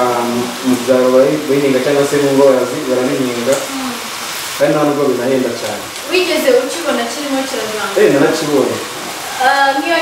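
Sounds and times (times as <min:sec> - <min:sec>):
food sizzling in frying pan: 0:00.0 - 0:10.0.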